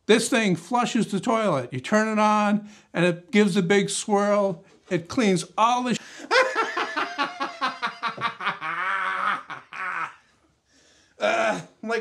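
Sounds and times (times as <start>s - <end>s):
man laughing: 6.2s - 10.2s.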